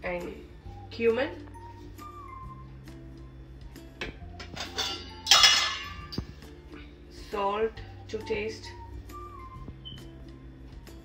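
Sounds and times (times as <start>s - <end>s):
metal lid clattering: 4.4s - 6.3s.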